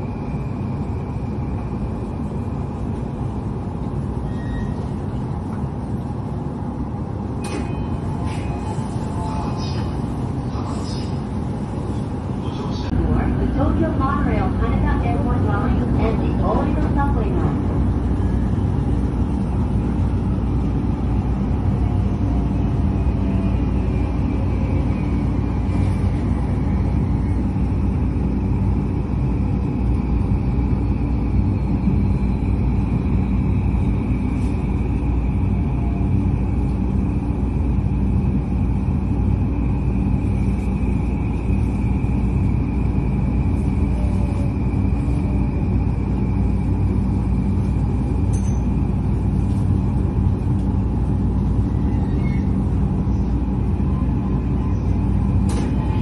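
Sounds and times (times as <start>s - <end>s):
train wheels rumbling on rails: 0.0s - 56.0s
high steady whine: 7.4s - 56.0s.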